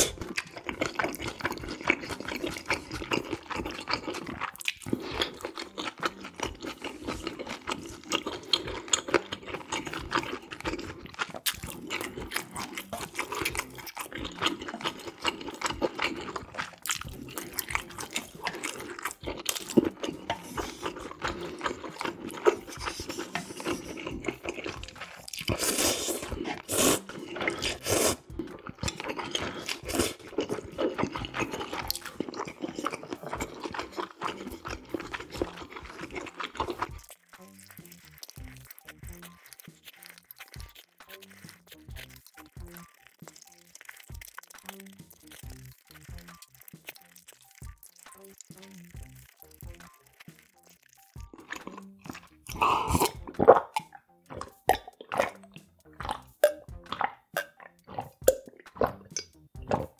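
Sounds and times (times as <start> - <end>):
noodle slurps: 0.0 - 59.9
wet chewing and smacking: 0.0 - 59.9.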